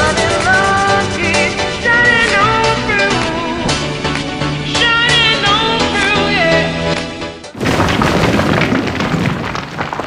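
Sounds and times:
boom: 7.6 - 10.0
crumbling stone debris rumble: 7.6 - 10.0.

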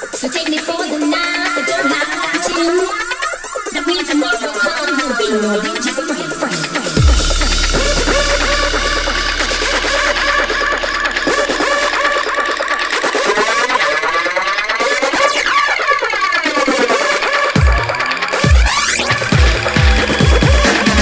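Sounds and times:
wavering synthesizer tones: 0.0 - 21.0
sweeping filtered synth passage: 1.8 - 21.0
deep bass note: 7.0 - 13.0.

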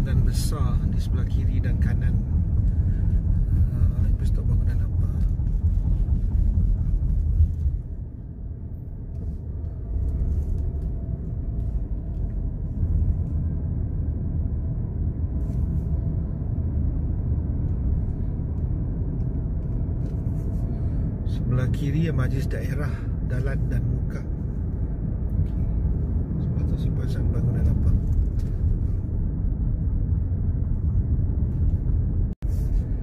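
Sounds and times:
car interior road rumble: 0.0 - 33.0.

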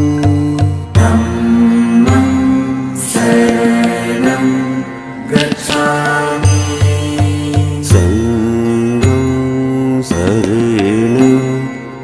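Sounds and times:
steady drone: 0.2 - 9.0.

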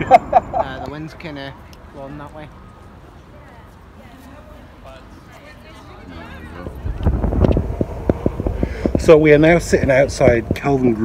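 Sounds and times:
wind buffeting microphone: 6.4 - 11.0.

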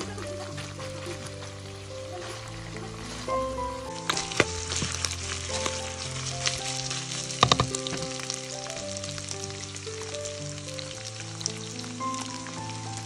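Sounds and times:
livers and onions sizzling in a pan: 0.0 - 13.0.

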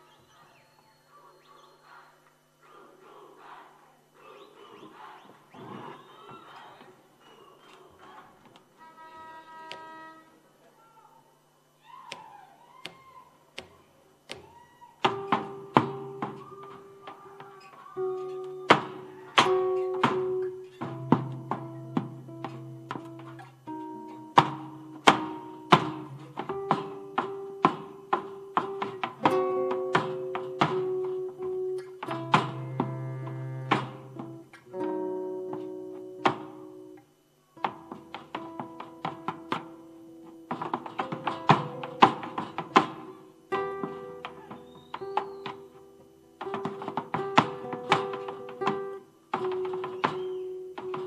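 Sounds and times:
boots stamping on stage: 12.8 - 36.8, 37.6 - 45.8, 46.4 - 51.0
guitar chords struck sharply: 18.1 - 37.0.

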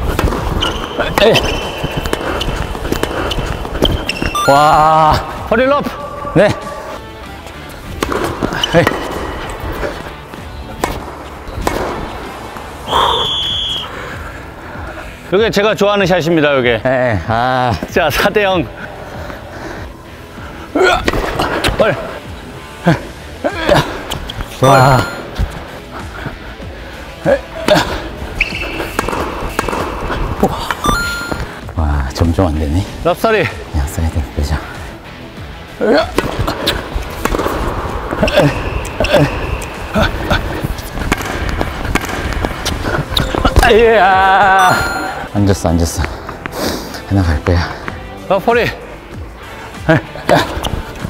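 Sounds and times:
background music: 0.0 - 51.0
tennis ball struck by rackets: 0.1 - 4.3, 7.9 - 9.4, 10.7 - 12.3, 28.9 - 30.0, 36.1 - 37.7, 41.0 - 43.4
short high steady tone: 4.3 - 5.1, 24.6 - 25.4, 30.8 - 31.6, 44.6 - 45.4.

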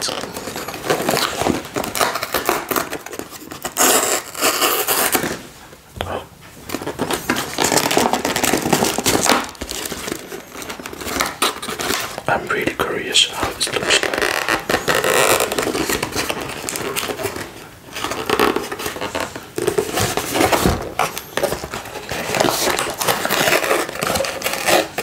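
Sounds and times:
paperboard carton crinkling and tearing: 0.0 - 5.5, 6.7 - 25.0.

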